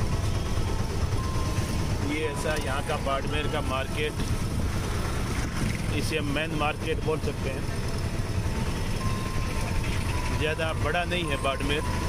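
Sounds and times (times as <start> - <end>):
auto-rickshaw engine rumble: 0.0 - 12.0
road noise: 0.0 - 12.0.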